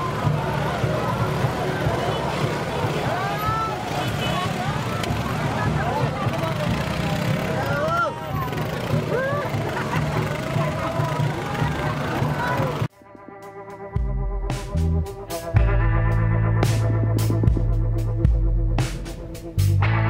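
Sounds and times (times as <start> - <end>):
crowd talking and shouting: 0.0 - 19.6.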